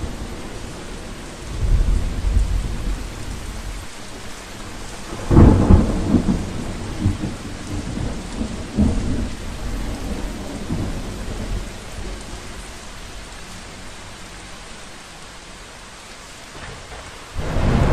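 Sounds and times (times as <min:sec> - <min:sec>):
thunder rumbling: 0:00.0 - 0:03.9, 0:05.1 - 0:13.2, 0:16.6 - 0:17.9
steady rain: 0:00.0 - 0:17.9.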